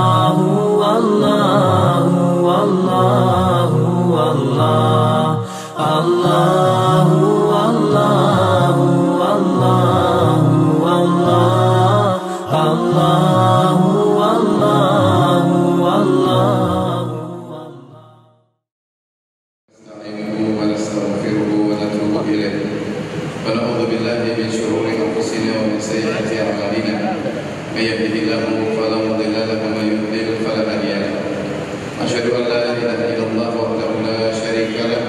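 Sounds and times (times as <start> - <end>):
layered voices chanting: 0.0 - 18.2
low drone: 0.0 - 18.2.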